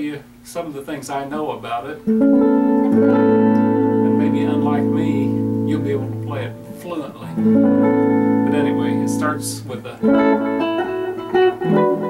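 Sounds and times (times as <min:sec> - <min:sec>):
electric guitar chord ringing: 0:02.0 - 0:12.0.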